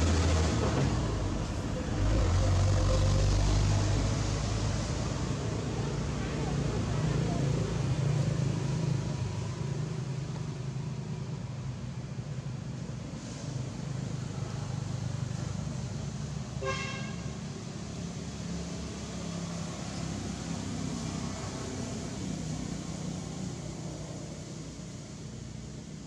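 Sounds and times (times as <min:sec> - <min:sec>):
outdoor background noise: 0:00.0 - 0:26.0.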